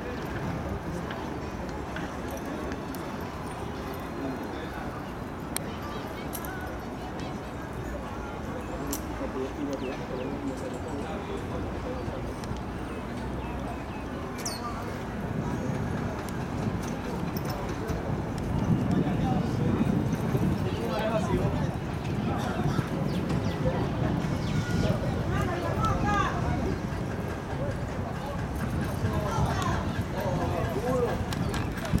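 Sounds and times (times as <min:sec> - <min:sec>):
people talking: 0:00.0 - 0:32.0.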